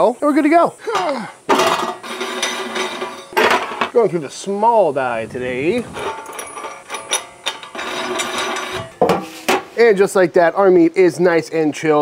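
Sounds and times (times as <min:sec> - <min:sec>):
metal grinder parts clattering: 0:00.9 - 0:04.0, 0:05.7 - 0:09.6.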